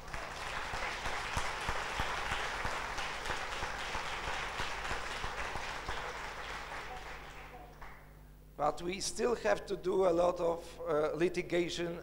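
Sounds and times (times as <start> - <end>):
audience applauding: 0.0 - 8.0.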